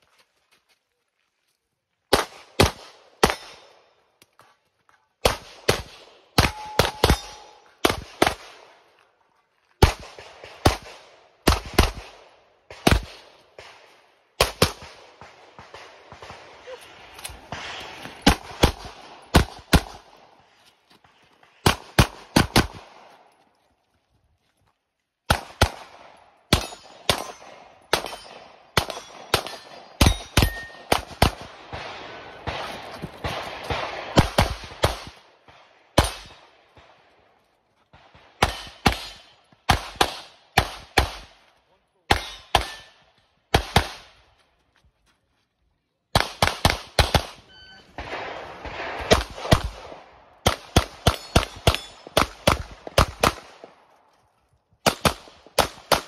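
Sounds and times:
pistol shots: 2.1s - 3.8s, 5.2s - 8.8s, 9.8s - 20.3s, 21.6s - 23.2s, 25.3s - 36.9s, 37.9s - 41.5s, 42.1s - 44.2s, 46.1s - 53.8s, 54.8s - 56.0s.

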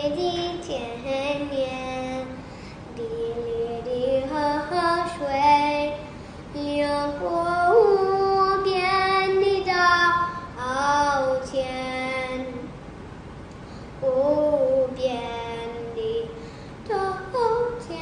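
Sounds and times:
girl singing: 0.0s - 12.7s, 14.0s - 18.0s.

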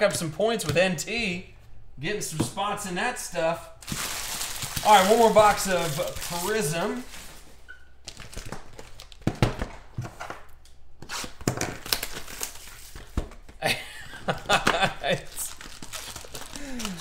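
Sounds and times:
plastic wrapping tearing and crinkling: 3.8s - 9.3s, 11.0s - 13.4s, 14.5s - 17.0s.

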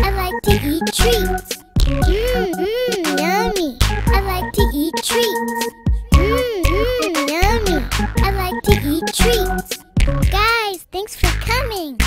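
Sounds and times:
person singing: 0.0s - 1.4s, 2.0s - 9.8s
children's song music: 0.0s - 12.0s.

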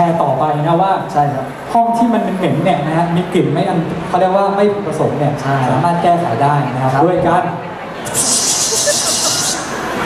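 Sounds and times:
man's voice: 0.0s - 7.6s.

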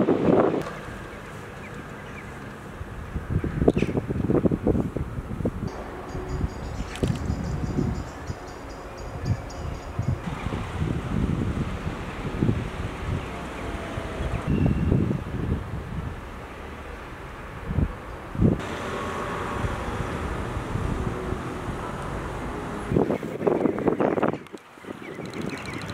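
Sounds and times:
wind buffeting microphone: 0.0s - 25.9s.

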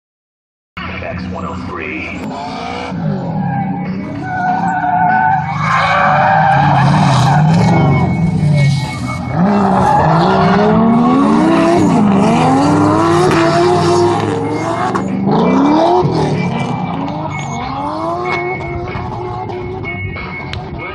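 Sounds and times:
car engine revving hard: 2.1s - 20.0s
tire squeal: 2.4s - 20.9s.

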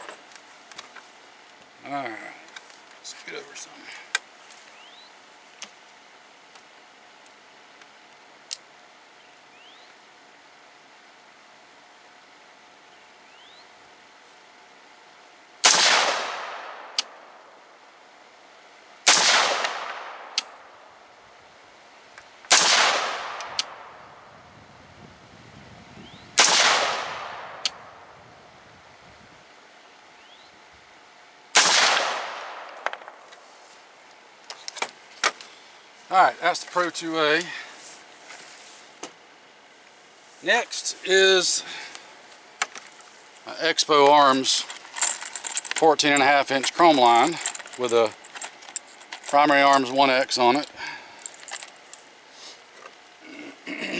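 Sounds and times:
rifle shots echoing: 15.6s - 17.0s, 19.0s - 20.6s, 22.5s - 24.0s, 26.4s - 27.9s, 31.5s - 32.8s
gun handling clicks: 19.1s - 20.6s, 22.5s - 23.8s, 26.4s - 27.8s.

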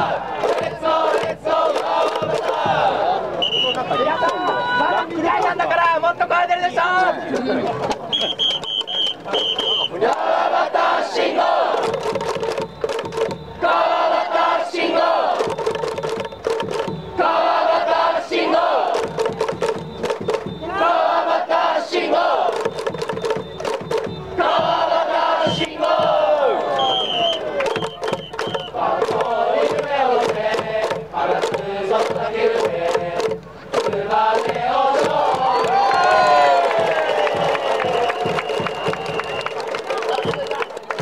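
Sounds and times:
crowd chanting: 0.0s - 5.8s, 6.6s - 41.0s
sharp rhythmic beats: 0.0s - 6.4s, 7.7s - 41.0s.

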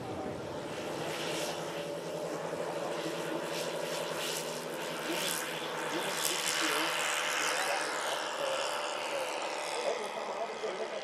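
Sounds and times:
model plane propeller hum: 0.0s - 11.0s.

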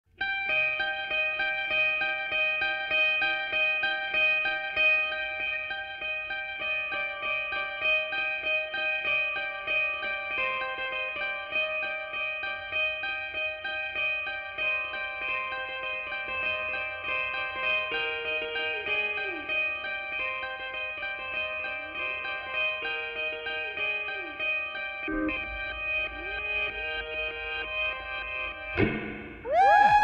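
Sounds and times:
effects-treated guitar picking: 0.2s - 30.0s.

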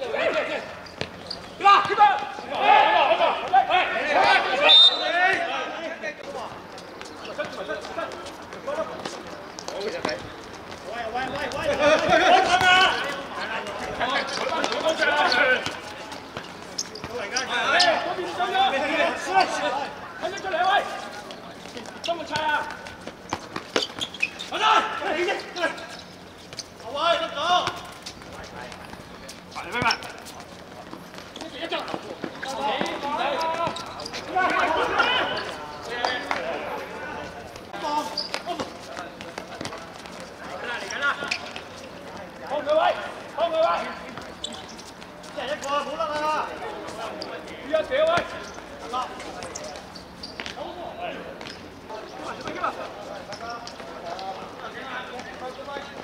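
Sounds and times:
players shouting: 1.6s - 6.0s, 11.0s - 16.0s, 24.2s - 26.1s, 31.5s - 38.7s.

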